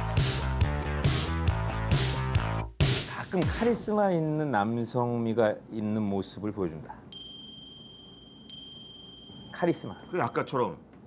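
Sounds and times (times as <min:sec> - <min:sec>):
high bell-like chime: 0:07.1 - 0:10.6.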